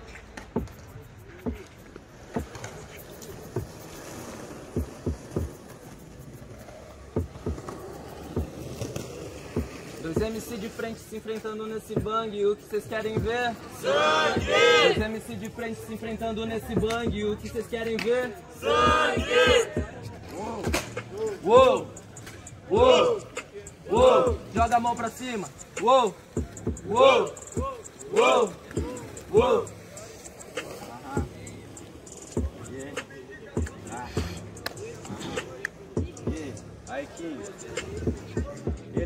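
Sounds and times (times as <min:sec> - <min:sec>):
hip-hop beat from speaker: 0:00.0 - 0:39.0
person shouting: 0:23.9 - 0:24.4.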